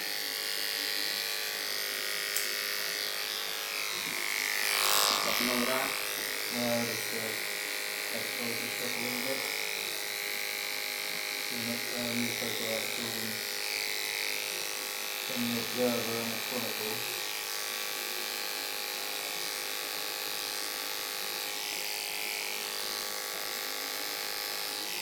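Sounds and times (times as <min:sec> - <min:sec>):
electric hair clippers cutting hair: 0:00.0 - 0:25.0.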